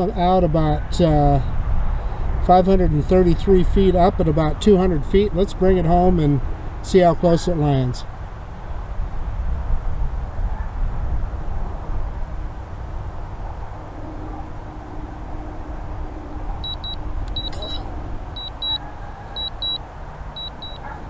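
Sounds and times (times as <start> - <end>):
wind buffeting microphone: 8.2 - 18.7
remote controller double beeps: 16.6 - 18.8, 19.4 - 19.8, 20.4 - 20.8.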